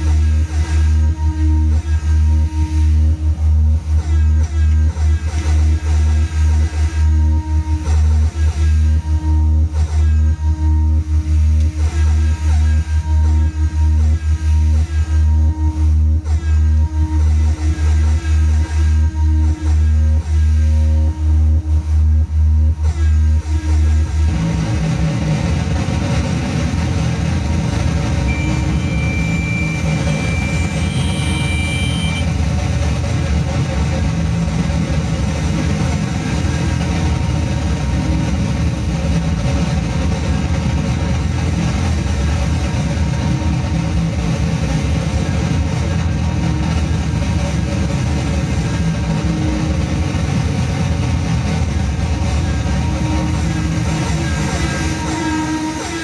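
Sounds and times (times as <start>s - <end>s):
rumbling low electronic drone: 0.0s - 56.0s
pulsing low tone: 13.0s - 32.8s
thin high tone: 28.3s - 32.3s.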